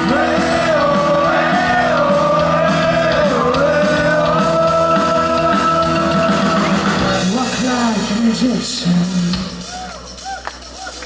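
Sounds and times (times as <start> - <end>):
pop-rock band playing: 0.0 - 11.0.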